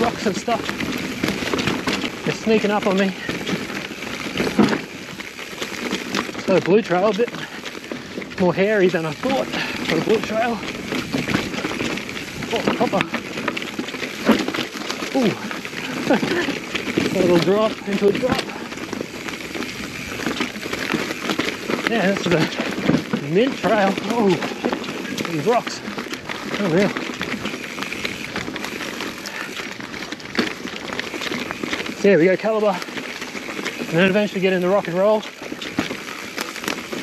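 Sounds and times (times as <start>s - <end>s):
bike hard jolt: 0.0s - 37.0s
bike rattling knocks: 0.0s - 37.0s
bike tyres rolling over rocks: 0.0s - 37.0s.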